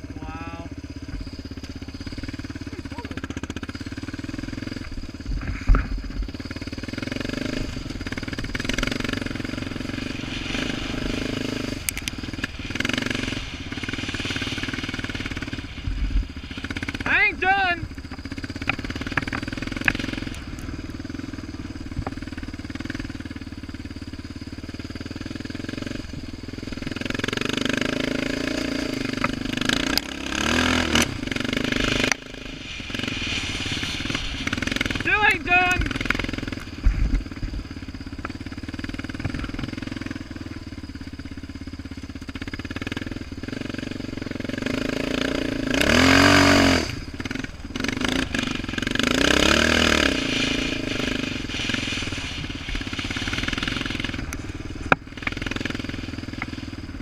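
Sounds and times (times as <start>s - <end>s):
quad engine revving: 0.0s - 57.0s.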